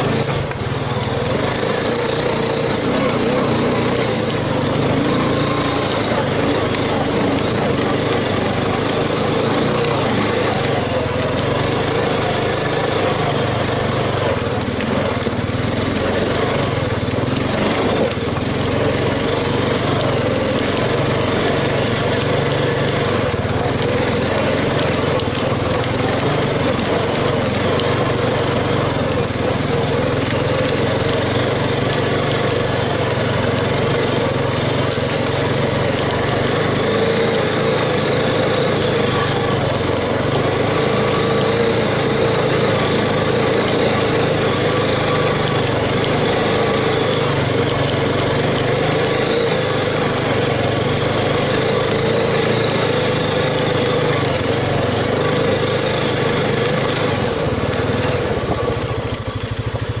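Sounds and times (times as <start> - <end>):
quad bike engine running: 0.0 - 60.0.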